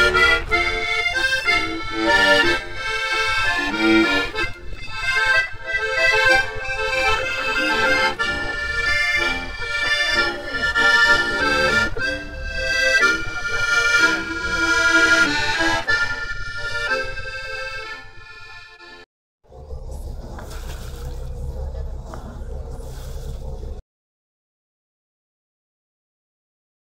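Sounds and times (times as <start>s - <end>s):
low outdoor rumble: 0.0s - 18.6s, 19.5s - 23.8s
accordion playing lively tune: 0.0s - 19.1s.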